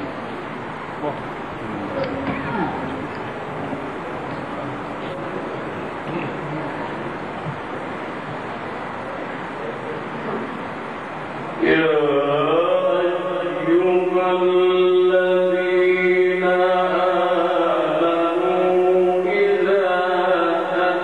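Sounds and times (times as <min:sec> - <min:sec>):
crowded hall background noise: 0:00.0 - 0:21.0
man reciting over a microphone: 0:11.6 - 0:21.0.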